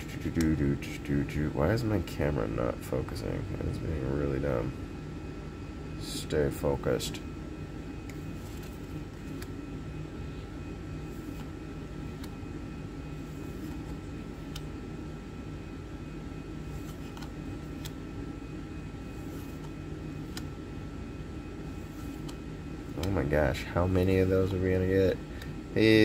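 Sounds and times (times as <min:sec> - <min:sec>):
steady mechanical hum: 0:00.0 - 0:26.0
cards sliding clicks: 0:08.0 - 0:09.6, 0:11.2 - 0:12.4, 0:13.4 - 0:14.7, 0:16.7 - 0:18.0, 0:19.2 - 0:20.6, 0:21.9 - 0:23.2.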